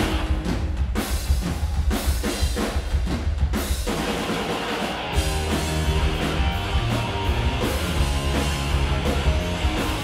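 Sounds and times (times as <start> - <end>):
live rock band: 0.0 - 10.0
rapid drum hits: 0.0 - 10.0
steady low bass: 5.2 - 10.0.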